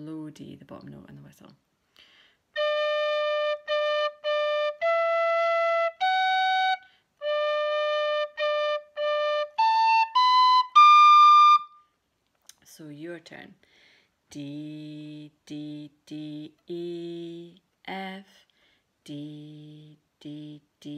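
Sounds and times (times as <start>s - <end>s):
tin whistle playing a reel: 2.6s - 11.8s.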